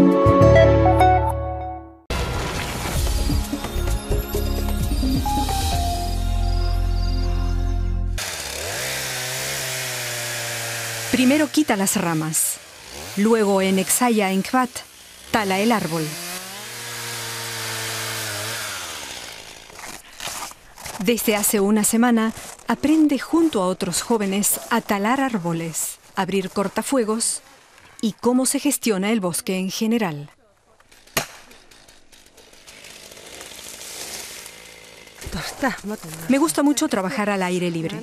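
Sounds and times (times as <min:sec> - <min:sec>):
chainsaw cutting tree trunk: 0:08.2 - 0:25.7, 0:30.8 - 0:36.9.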